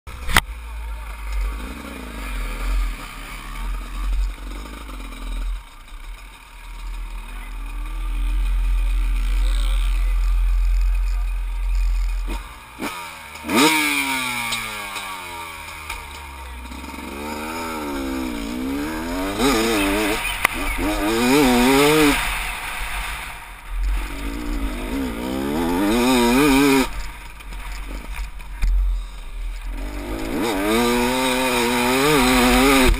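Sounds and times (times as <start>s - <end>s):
dirt bike engine revving: 0.1s - 32.9s.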